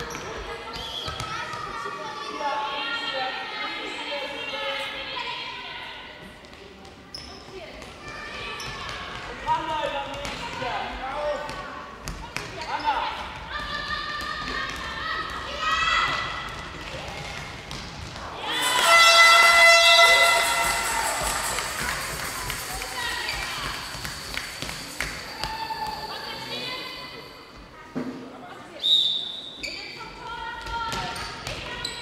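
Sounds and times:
ball bouncing on hall floor: 6.4s - 26.2s, 30.6s - 32.0s
people calling out: 18.3s - 24.0s
loud high-pitched call: 18.5s - 22.3s.

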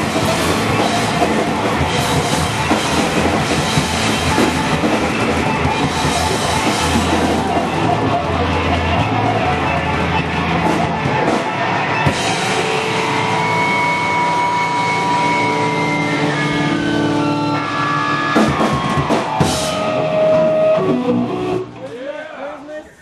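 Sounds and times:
rock band playing live: 0.0s - 22.0s.

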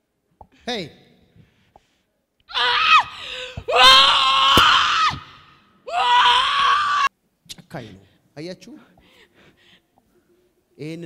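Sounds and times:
woman screaming into microphone: 2.5s - 7.1s.

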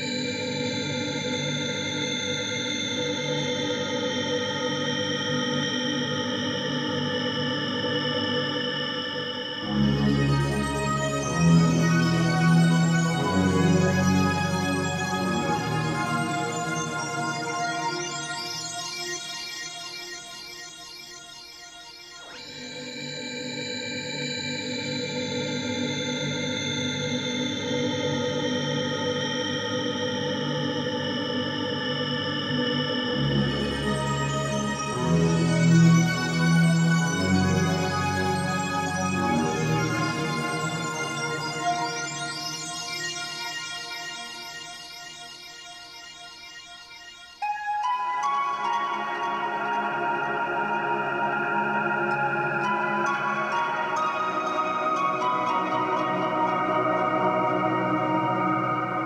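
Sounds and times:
ambient synthesizer music: 4.7s - 21.4s, 30.6s - 45.8s
ambient synthesizer chord: 31.4s - 45.5s.

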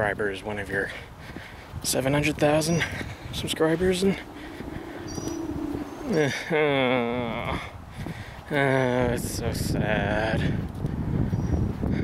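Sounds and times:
low steady hum: 3.2s - 6.9s.

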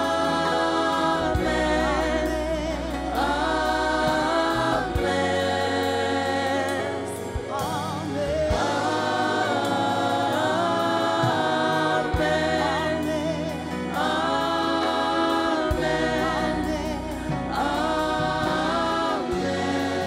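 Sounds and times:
band accompaniment: 0.0s - 20.0s
choir of backing singers: 0.0s - 20.0s
lead voice singing: 0.0s - 20.0s.

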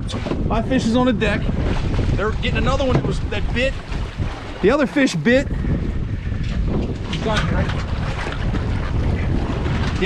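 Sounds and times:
outboard motor running: 0.0s - 10.0s
wind buffeting microphone: 0.0s - 10.0s.

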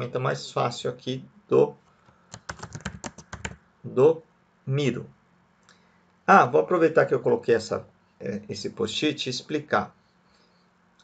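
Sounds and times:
typing on computer keyboard: 2.3s - 3.6s.

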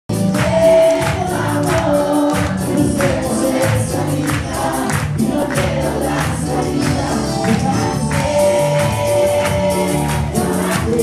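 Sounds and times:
percussion beat: 0.1s - 11.0s
person singing: 0.1s - 11.0s.

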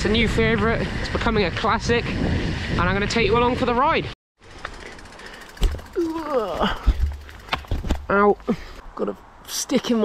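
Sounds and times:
person crying out: 6.0s - 7.0s.

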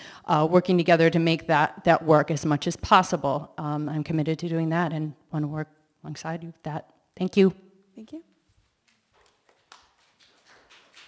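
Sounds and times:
faint footsteps on floor: 8.3s - 11.0s.

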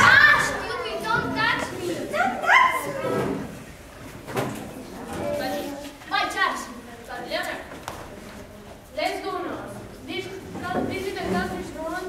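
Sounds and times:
children speaking: 0.0s - 12.0s.

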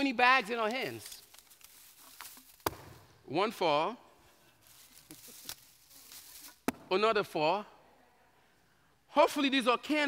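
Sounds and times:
plastic bags rustling: 0.8s - 2.7s, 4.6s - 6.6s.

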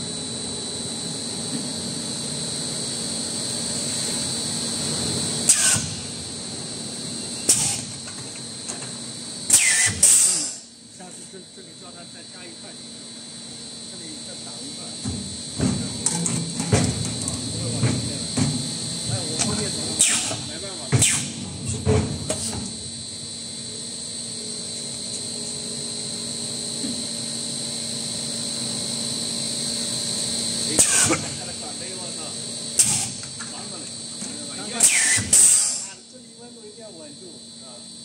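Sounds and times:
machine high-pitched whine: 0.0s - 38.0s
sharp pneumatic clicks: 5.4s - 6.1s, 7.4s - 8.2s, 9.5s - 10.7s, 20.0s - 21.4s, 30.7s - 31.4s, 32.8s - 33.5s, 34.8s - 36.0s
short air blasts: 5.4s - 6.1s, 7.4s - 8.0s, 9.5s - 10.7s, 20.0s - 21.4s, 30.7s - 31.4s, 32.8s - 33.2s, 34.8s - 35.9s.

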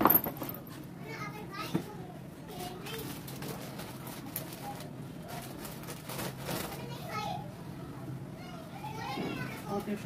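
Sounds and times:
children talking and playing: 0.1s - 10.0s.

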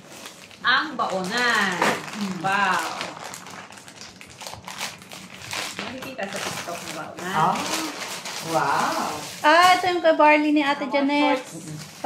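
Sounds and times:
plastic packaging rustling: 0.0s - 12.0s.

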